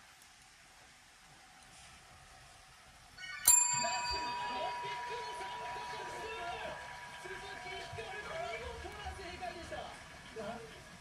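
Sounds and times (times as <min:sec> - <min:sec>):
desk call bell ding: 0:03.5 - 0:09.0.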